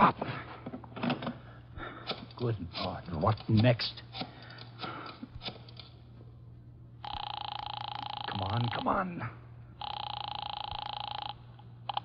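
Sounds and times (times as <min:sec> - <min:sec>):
telephone ringing: 0:07.0 - 0:09.1, 0:09.8 - 0:12.0.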